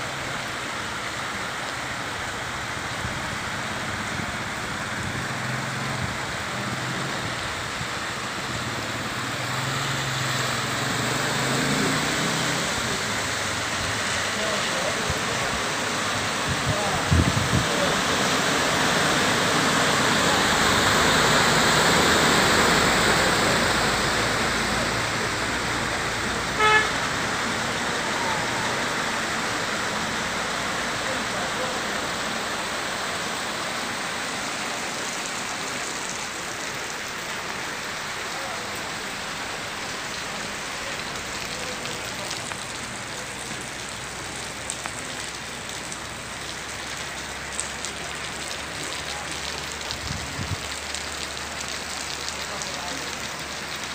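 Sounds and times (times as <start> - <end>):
floodwater rushing: 0.0 - 53.9
heavy rain: 0.0 - 53.9
car horn toot: 26.6 - 27.1.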